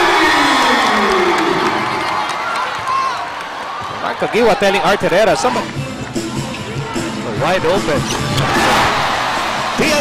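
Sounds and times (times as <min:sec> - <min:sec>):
arena crowd cheering: 0:00.0 - 0:05.7, 0:08.3 - 0:10.0.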